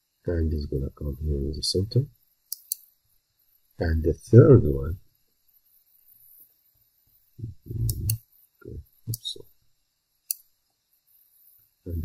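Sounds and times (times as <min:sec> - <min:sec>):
computer mouse clicking: 0:02.5 - 0:02.9
low vocal sounds: 0:07.4 - 0:08.8.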